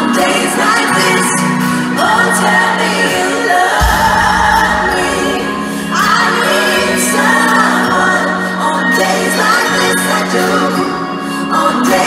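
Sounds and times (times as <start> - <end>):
live pop band: 0.0 - 12.0
woman singing into microphone: 0.0 - 12.0
deep bass hit: 3.8 - 7.2.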